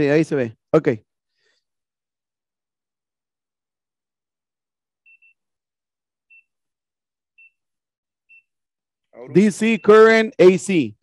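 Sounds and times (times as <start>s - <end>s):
faint multimeter beeps: 5.0s - 5.6s, 6.2s - 6.7s, 7.3s - 8.7s, 9.6s - 10.3s.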